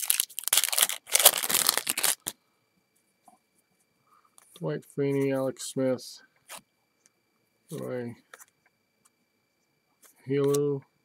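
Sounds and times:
wrapper tearing and crinkling: 0.0s - 2.3s.

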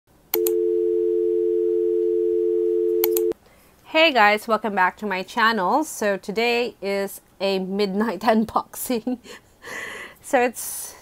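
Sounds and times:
short clicks: 3.0s - 3.4s.

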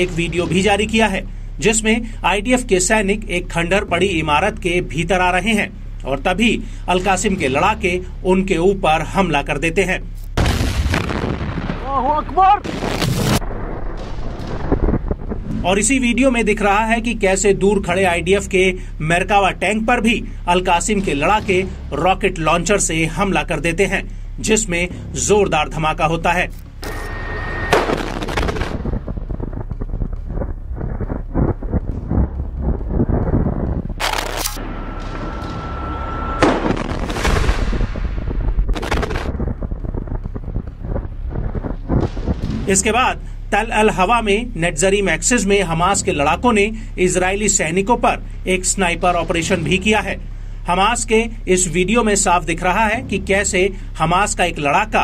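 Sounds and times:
loud explosion: 0.0s - 1.4s, 10.4s - 16.7s, 20.8s - 23.6s, 26.8s - 43.4s
dense crackling: 0.0s - 55.0s
sharp bang: 26.8s - 29.2s.

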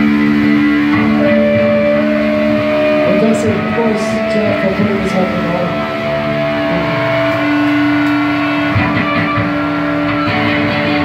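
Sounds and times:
electric guitar droning notes: 0.0s - 11.0s.

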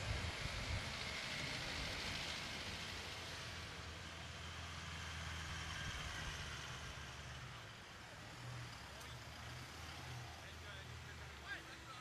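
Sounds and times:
cars passing slowly: 0.0s - 12.0s.

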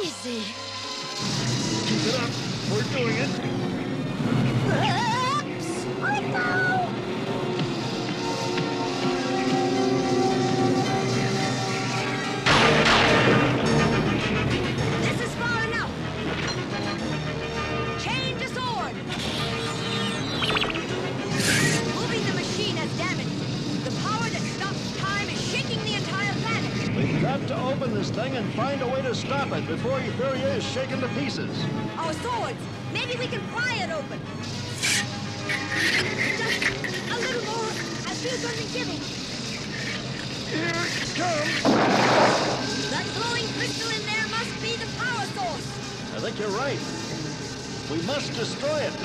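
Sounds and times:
dramatic cartoon music: 0.0s - 49.0s
loud crash: 12.5s - 13.9s, 41.6s - 42.8s.

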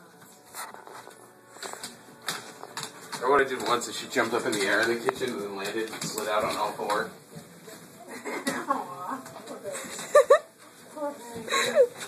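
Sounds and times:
dog claws clicking on tile: 1.0s - 7.1s.

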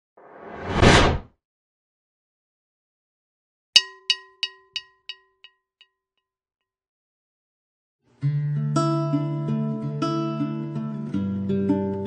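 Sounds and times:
whoosh sound effect: 0.2s - 1.2s.

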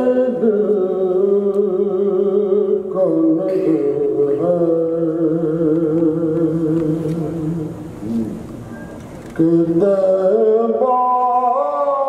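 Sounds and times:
man chanting: 0.0s - 8.4s, 9.4s - 12.0s.

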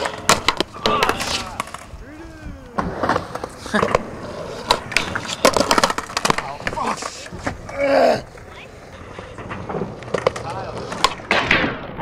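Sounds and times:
skateboard pop: 0.0s - 1.9s, 2.7s - 7.8s
skateboard scraping along metal rail: 0.0s - 2.0s, 2.8s - 12.0s
skateboard wheels rolling on concrete: 0.0s - 12.0s.

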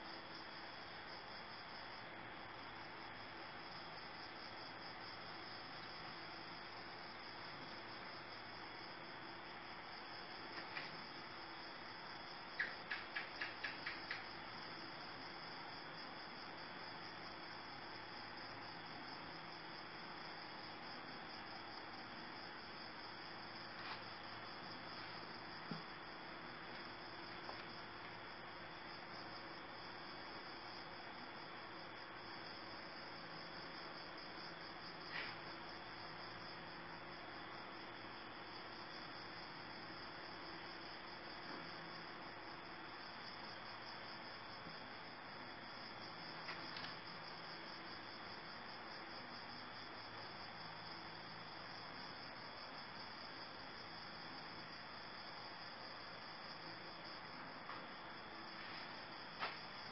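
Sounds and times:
crickets chirring: 0.0s - 59.9s.

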